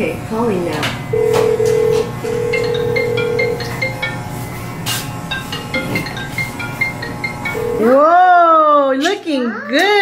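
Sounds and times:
marimba ringtone: 1.2 - 4.2, 5.3 - 8.3.

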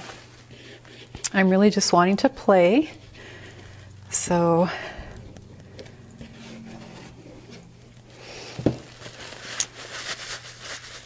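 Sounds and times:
paper towel crinkling: 0.0 - 1.7, 4.7 - 11.0.

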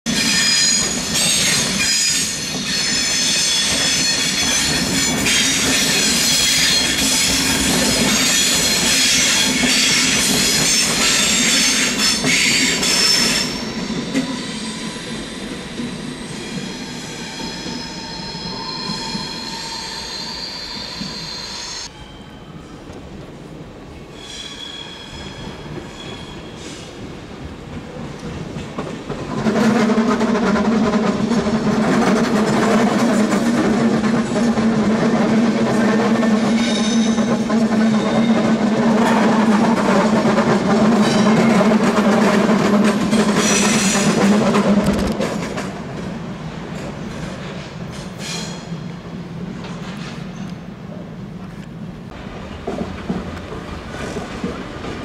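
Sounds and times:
train wheels squealing: 0.1 - 22.9, 24.1 - 27.0, 35.8 - 40.1, 40.8 - 41.8, 43.1 - 44.2, 48.0 - 48.9
train passing: 0.1 - 55.0.

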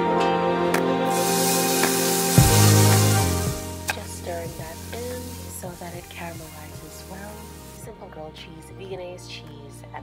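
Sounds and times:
background music: 0.0 - 10.0
vegetables sizzling in oil: 1.1 - 8.0.

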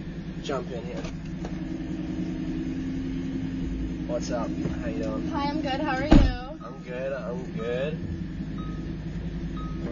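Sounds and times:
car engine idling: 0.0 - 9.9.

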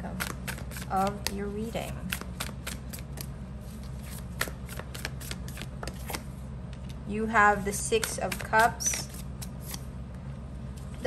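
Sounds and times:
cards being shuffled: 0.1 - 6.3, 7.7 - 9.9.

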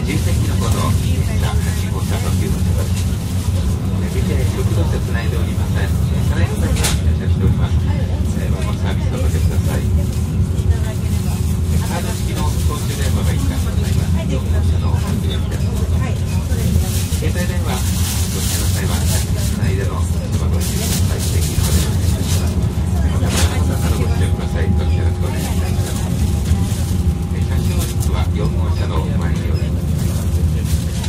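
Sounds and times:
faint indistinct voices: 0.0 - 31.0
train wheels and motors rumbling: 0.0 - 31.0.

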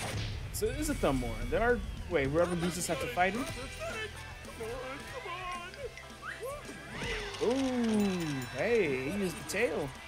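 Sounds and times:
soundtrack music: 0.0 - 10.0.

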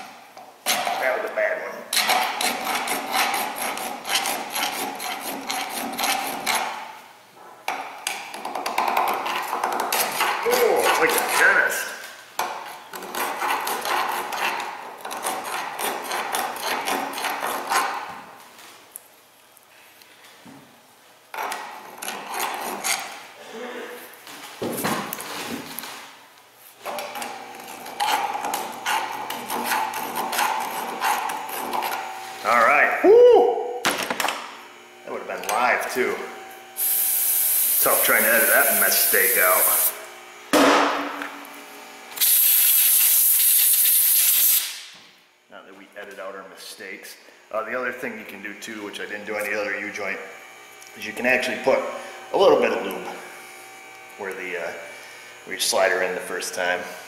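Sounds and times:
hand tool scraping steel: 1.9 - 6.8, 8.6 - 11.6, 12.6 - 18.0, 21.4 - 23.2, 27.2 - 32.0.

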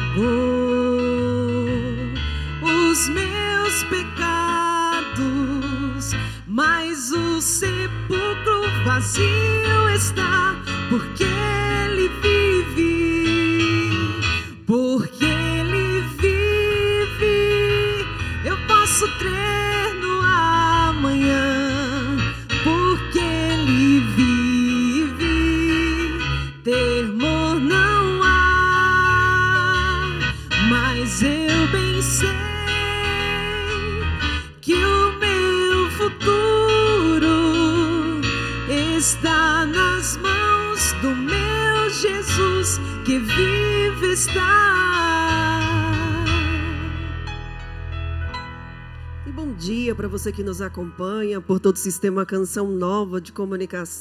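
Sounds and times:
woman singing worship song: 0.0 - 34.0, 34.6 - 47.0
digital piano accompaniment: 0.0 - 54.0.

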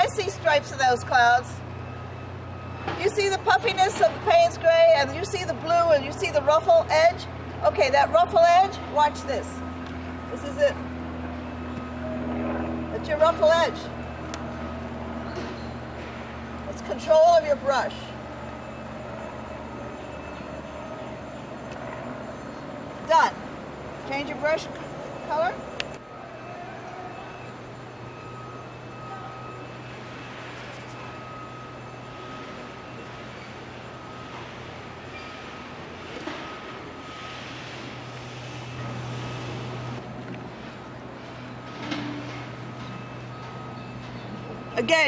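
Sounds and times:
distant machinery hum: 0.0 - 45.0.

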